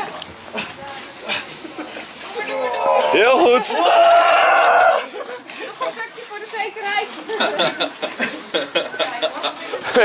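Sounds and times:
people exclaiming: 0:02.4 - 0:05.2.

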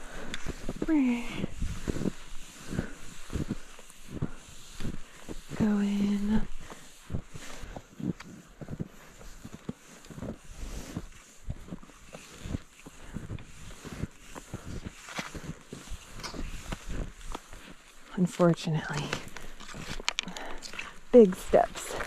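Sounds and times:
skis and poles crunching through snow: 0:00.0 - 0:22.0.

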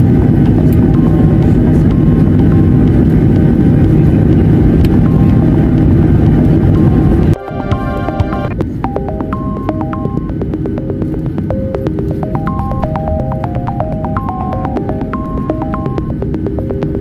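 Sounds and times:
airliner cabin rumble: 0:00.0 - 0:17.0
electronic music: 0:06.6 - 0:17.0.

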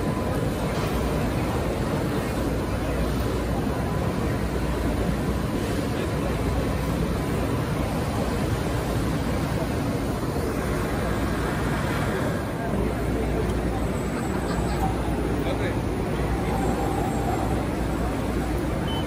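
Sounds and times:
crowd babble: 0:00.0 - 0:19.0
machinery hum: 0:00.0 - 0:19.0.

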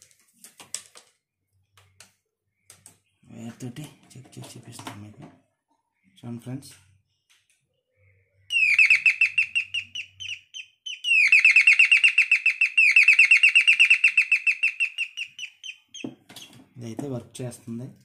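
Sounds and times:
electronic bell bird-chirp tune: 0:08.5 - 0:16.0.

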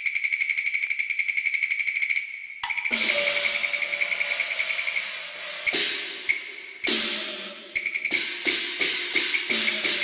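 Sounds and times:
cymbal crash: 0:02.9 - 0:10.0.

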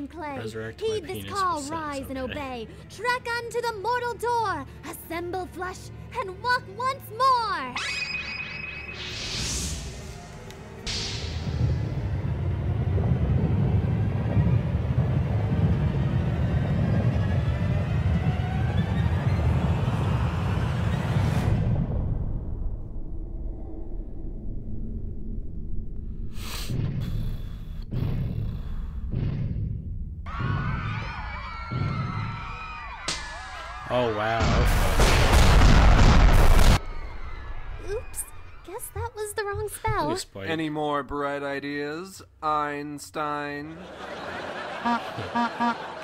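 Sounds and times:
ominous music: 0:00.2 - 0:38.7
deep steady rumble: 0:11.2 - 0:30.3.

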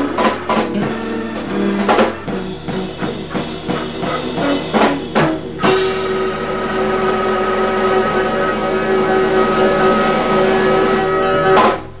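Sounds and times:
jazz combo holding chord: 0:00.0 - 0:12.0
sustained organ: 0:00.0 - 0:12.0.

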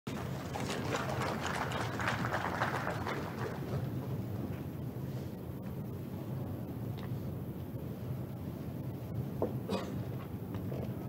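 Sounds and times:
audience applause: 0:00.1 - 0:04.0
low hum from hall: 0:00.1 - 0:11.0.

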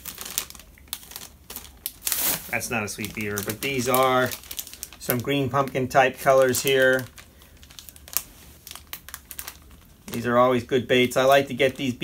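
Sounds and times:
plastic packets crinkling: 0:00.0 - 0:12.0.

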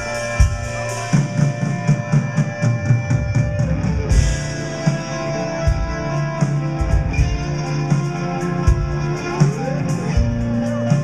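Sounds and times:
drum kit: 0:00.0 - 0:11.0
sustained electric guitar: 0:00.0 - 0:11.0.

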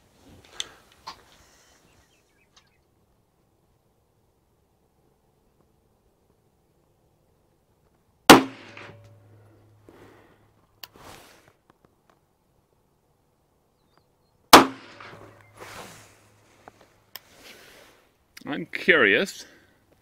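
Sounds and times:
pistol shots with echo: 0:08.3 - 0:09.0, 0:14.5 - 0:15.3.

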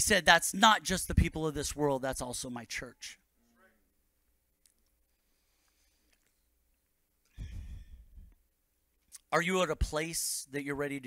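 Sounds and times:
breath buffeting microphone: 0:07.3 - 0:08.3.

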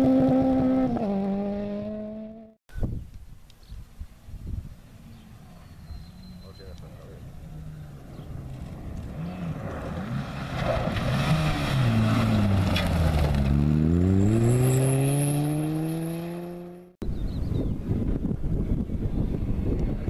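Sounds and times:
rally car engine: 0:07.2 - 0:16.9.

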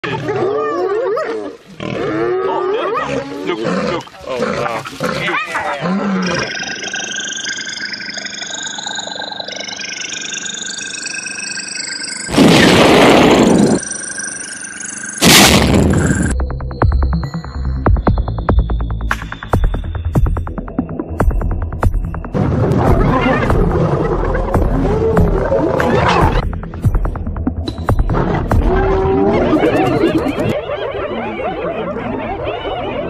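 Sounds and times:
wild animals crying: 0:00.0 - 0:06.8, 0:28.5 - 0:33.0
electronic music: 0:06.0 - 0:30.8.

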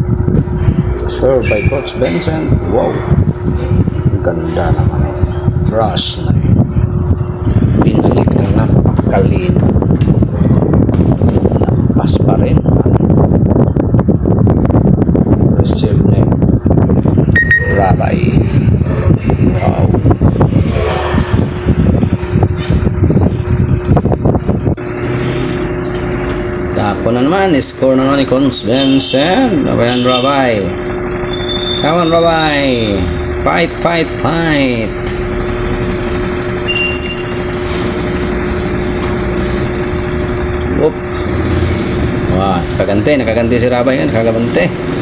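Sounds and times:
room noise rumble: 0:00.0 - 0:45.0
steady low hum: 0:00.0 - 0:45.0.

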